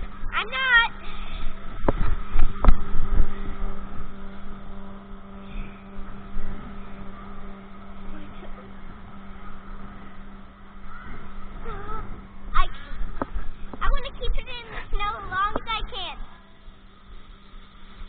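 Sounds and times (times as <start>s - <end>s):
low rumbling: 0.0s - 18.0s
steady machine hum: 0.0s - 18.0s.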